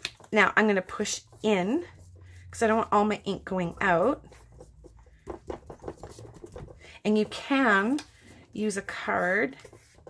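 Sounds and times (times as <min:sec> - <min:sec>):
fingers tapping on poster board: 0:03.8 - 0:08.1.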